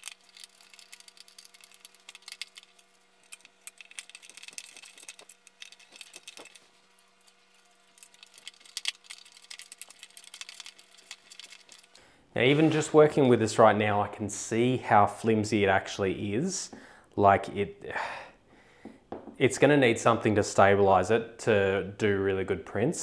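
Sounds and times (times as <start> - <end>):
plastic parts clicking and rattling: 0.0 - 12.0
faint steady hum: 0.0 - 23.0.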